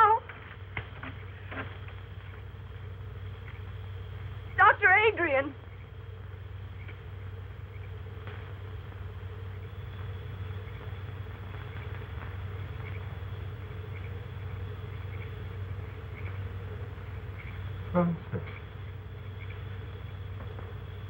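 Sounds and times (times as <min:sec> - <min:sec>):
film soundtrack hum and hiss: 0:00.0 - 0:21.0.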